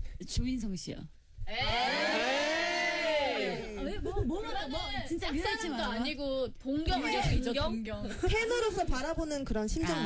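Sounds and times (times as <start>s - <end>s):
voices drawn-out ooh: 1.5s - 3.8s.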